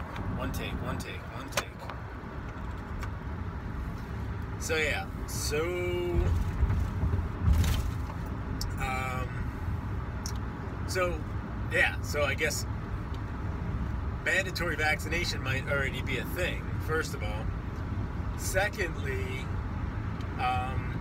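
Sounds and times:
car road and engine rumble: 0.0 - 21.0.

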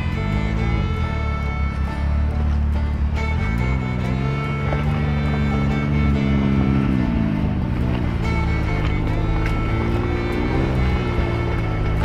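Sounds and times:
background music: 0.0 - 12.0
off-road vehicle engine revving: 0.0 - 12.0.

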